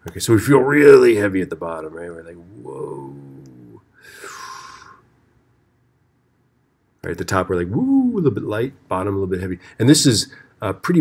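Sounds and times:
breathy mouth whoosh: 0:03.0 - 0:05.1.

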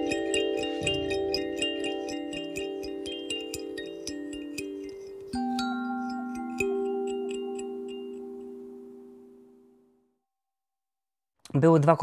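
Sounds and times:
light high tinkling: 0:00.0 - 0:09.8
handpan notes ringing: 0:00.0 - 0:10.0.

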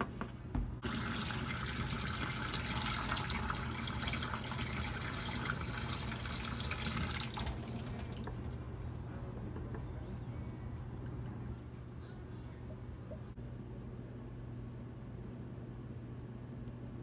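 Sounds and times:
steady low hum: 0:00.0 - 0:17.0
water running from a tap: 0:00.8 - 0:08.6.

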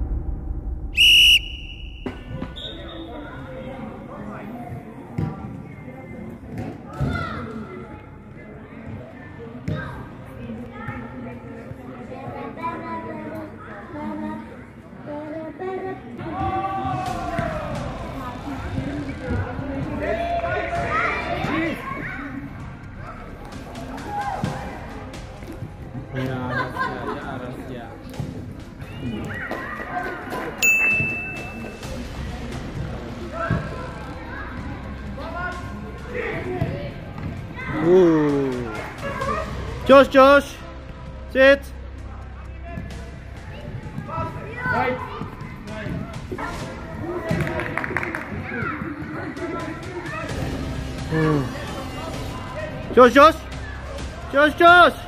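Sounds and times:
football kicks echoing: 0:00.0 - 0:03.1
shrill whistle blasts: 0:00.9 - 0:03.2
voices calling and chattering: 0:01.0 - 0:55.0
music playing: 0:16.9 - 0:29.1, 0:30.4 - 0:55.0.

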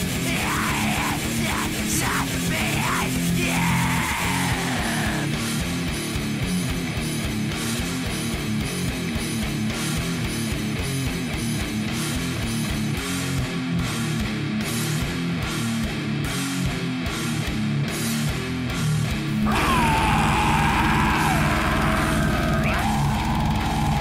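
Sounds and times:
fast drums and cymbals: 0:00.0 - 0:03.5
distorted guitars and bass riff: 0:00.0 - 0:24.0
falling guitar squeal: 0:19.4 - 0:24.0.

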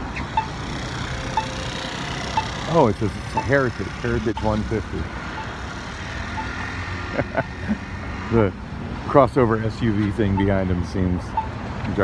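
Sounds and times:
passing cars: 0:00.0 - 0:12.0.

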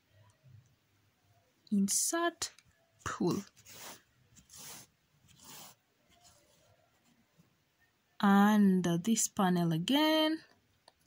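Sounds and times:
yarn rubbing: 0:03.0 - 0:07.1.

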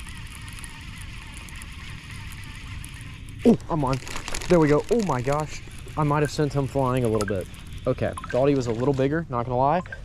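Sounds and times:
fishing reel cranking: 0:00.0 - 0:09.2.

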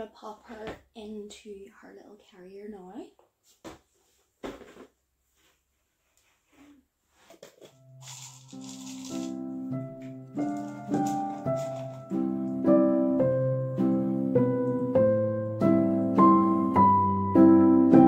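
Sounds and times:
soft piano music: 0:08.6 - 0:18.0
plastic pet carrier clicks and rustles: 0:10.0 - 0:12.2.

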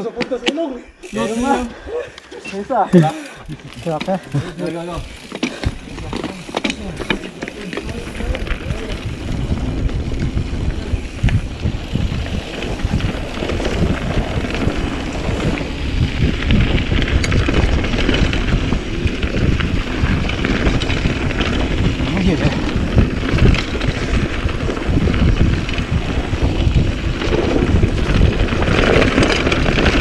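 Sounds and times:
sharp ticks from bike: 0:00.3 - 0:02.4, 0:03.0 - 0:30.0
mountain bike rumbling and rattling: 0:01.0 - 0:01.8, 0:02.6 - 0:30.0
wind buffeting microphone: 0:03.2 - 0:30.0.

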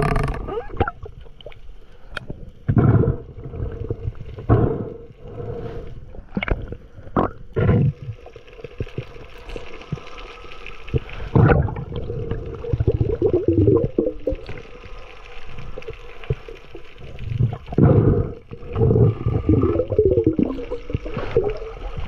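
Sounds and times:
water gurgling and sloshing: 0:00.0 - 0:22.0.

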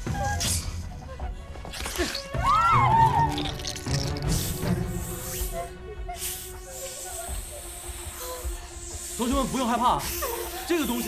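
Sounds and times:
background music steady note: 0:00.0 - 0:11.0
snake hissing: 0:03.4 - 0:11.0.

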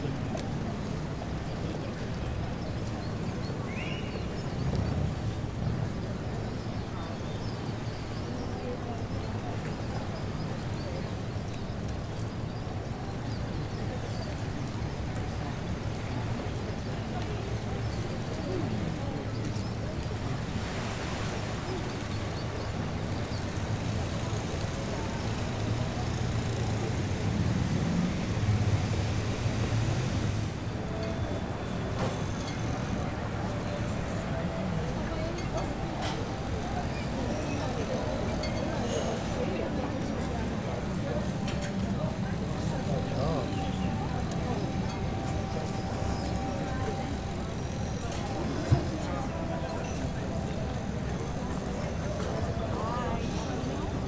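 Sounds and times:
low city rumble: 0:00.0 - 0:54.0.

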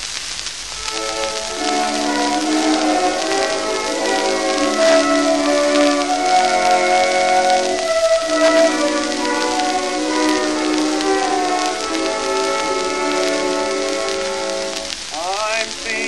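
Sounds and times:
old record instrumental music: 0:00.0 - 0:16.0
record crackle and hiss: 0:00.0 - 0:16.0.

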